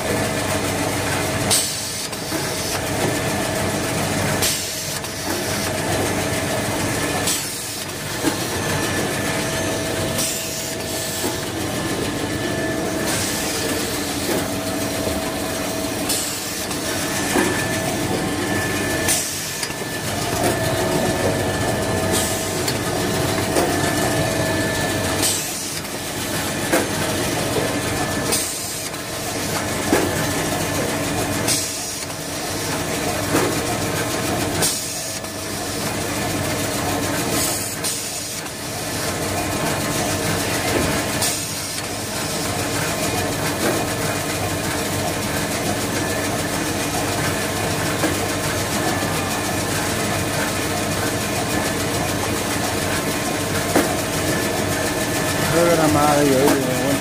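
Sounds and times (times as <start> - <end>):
machinery hum: 2.4 - 34.4
machine whining tones: 5.2 - 29.7.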